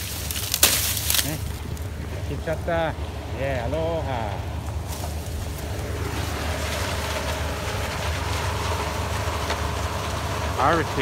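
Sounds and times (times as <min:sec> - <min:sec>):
harvester engine drone: 0:00.0 - 0:11.0.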